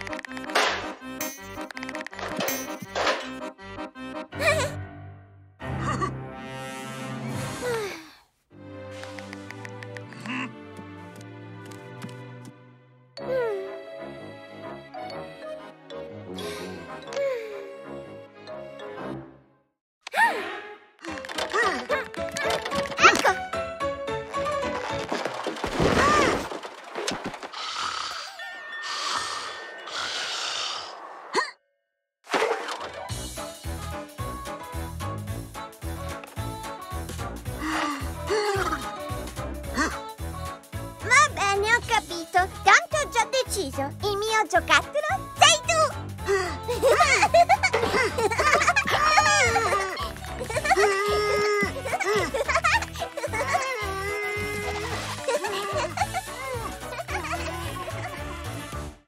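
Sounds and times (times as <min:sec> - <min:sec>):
background music: 0:00.0 - 0:25.2, 0:32.9 - 0:59.0.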